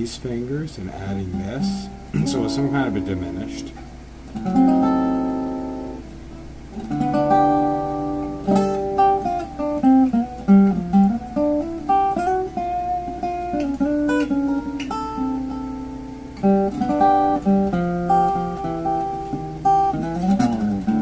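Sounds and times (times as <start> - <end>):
fingerpicked acoustic guitar blues: 0.0 - 21.0.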